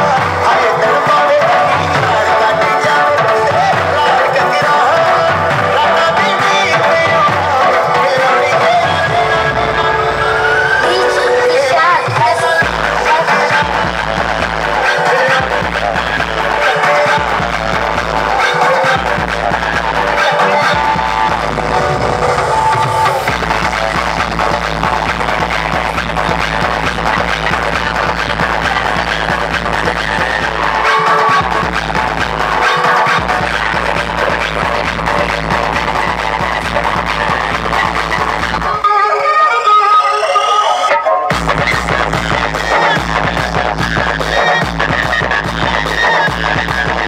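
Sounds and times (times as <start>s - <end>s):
booming bass: 0.0s - 11.2s, 12.6s - 38.8s, 41.3s - 47.0s
dance music over loudspeakers: 0.0s - 47.0s.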